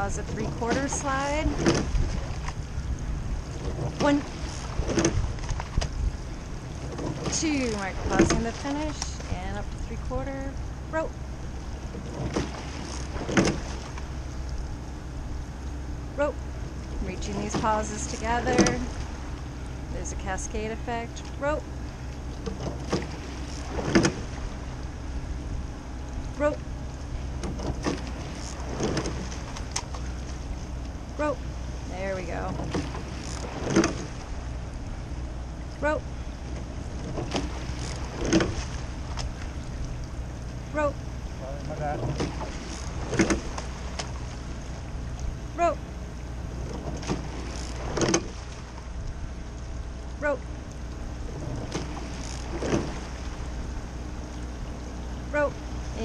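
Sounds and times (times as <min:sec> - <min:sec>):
oars knocking in oarlocks: 0:00.0 - 0:02.6, 0:03.5 - 0:06.0, 0:06.6 - 0:09.4, 0:11.8 - 0:14.2, 0:22.3 - 0:24.4, 0:27.4 - 0:30.4, 0:32.3 - 0:34.3, 0:36.5 - 0:39.9, 0:41.6 - 0:44.6, 0:46.6 - 0:48.6, 0:51.3 - 0:53.3
low rumble of water and wind: 0:00.0 - 0:56.0.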